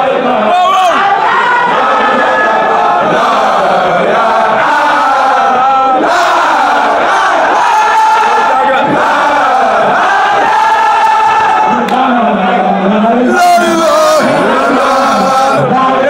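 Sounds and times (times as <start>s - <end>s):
crowd of men chanting: 0.0s - 16.0s.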